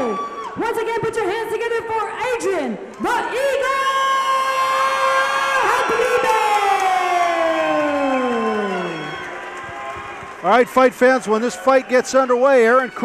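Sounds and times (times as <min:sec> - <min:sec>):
crowd cheering: 0:04.4 - 0:13.0.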